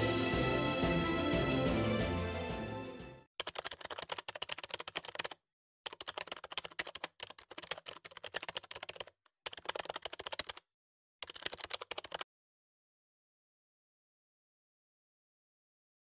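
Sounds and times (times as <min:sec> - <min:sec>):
keyboard key clicks: 0:03.4 - 0:10.6.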